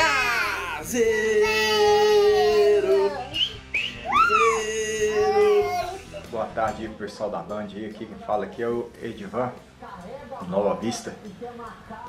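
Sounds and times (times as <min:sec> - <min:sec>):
girl squealing: 0:04.0 - 0:06.0.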